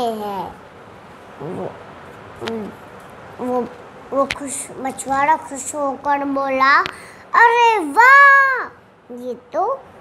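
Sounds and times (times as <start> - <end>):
young girl speaking: 0.0 - 0.6, 3.4 - 9.9.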